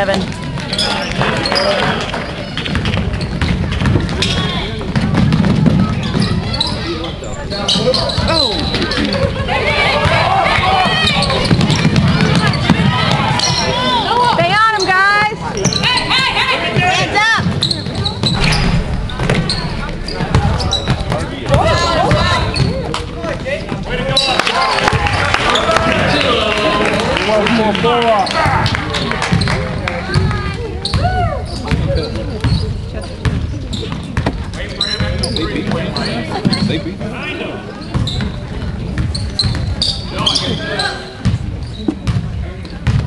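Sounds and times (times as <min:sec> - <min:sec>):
spectators' voices: 0:00.0 - 0:43.0
sneaker squeaks: 0:00.4 - 0:24.7, 0:28.2 - 0:36.9, 0:37.7 - 0:43.0.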